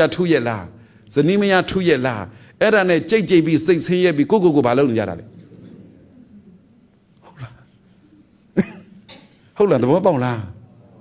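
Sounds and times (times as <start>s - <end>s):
man coughing: 8.5s - 9.6s.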